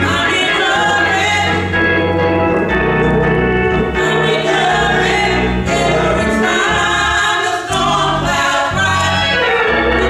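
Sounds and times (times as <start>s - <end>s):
gospel choir singing: 0.0s - 10.0s
organ chords: 0.0s - 10.0s.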